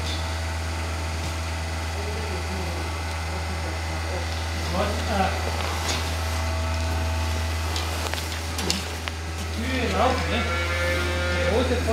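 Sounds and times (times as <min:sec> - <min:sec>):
low mechanical hum: 0:00.0 - 0:11.9
faint voices: 0:01.8 - 0:06.2.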